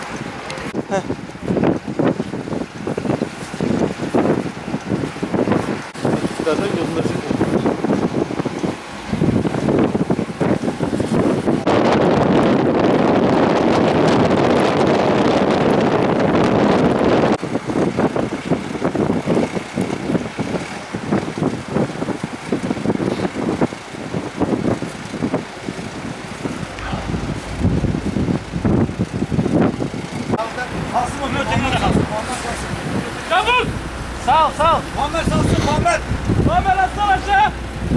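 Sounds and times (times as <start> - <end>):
vehicle engines running: 0.0 - 37.9
wind buffeting microphone: 0.0 - 37.9
indistinct voices: 26.6 - 29.4.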